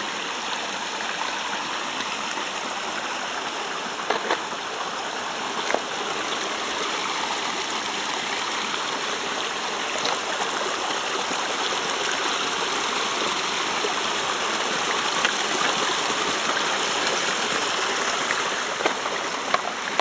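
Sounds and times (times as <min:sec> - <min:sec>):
river rushing: 0:00.0 - 0:20.0.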